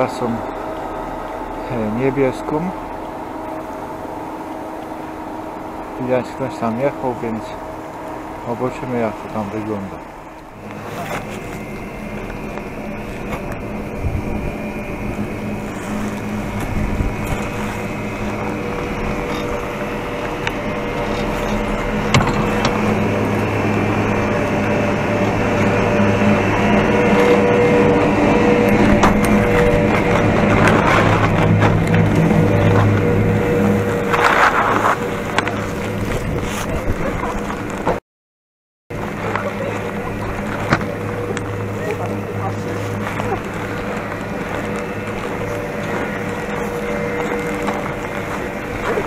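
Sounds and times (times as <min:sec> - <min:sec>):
chairlift machinery humming: 0:00.0 - 0:38.0, 0:38.9 - 0:49.0
skis sliding on snow: 0:28.7 - 0:37.8.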